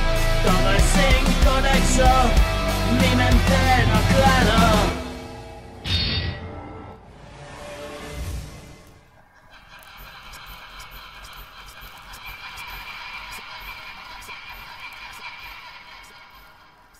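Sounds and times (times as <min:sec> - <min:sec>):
faint clicks: 0:08.8 - 0:16.9.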